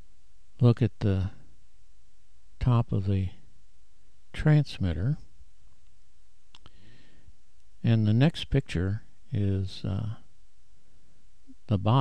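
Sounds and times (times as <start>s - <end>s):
faint low murmur: 0.0s - 12.0s
man speaking: 0.6s - 1.5s, 2.6s - 3.4s, 4.3s - 5.3s, 7.8s - 10.3s, 11.6s - 12.0s.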